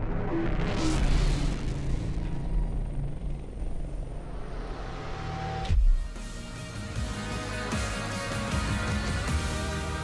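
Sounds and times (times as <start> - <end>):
low rumbling drone: 0.0 - 5.9.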